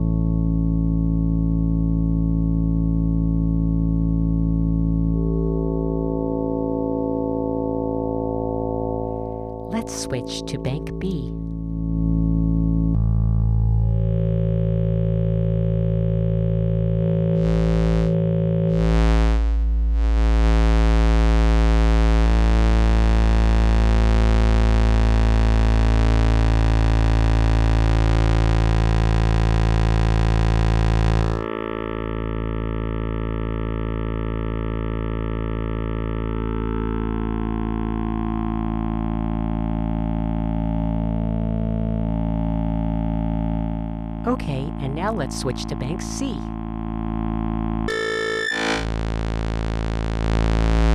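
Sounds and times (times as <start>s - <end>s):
synthesizer oscillator low note: 4.7s - 32.2s.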